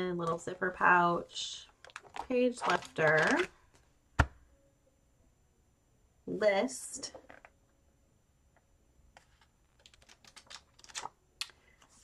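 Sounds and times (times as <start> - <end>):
hands handling paper pages: 1.8 - 3.5, 9.1 - 12.0.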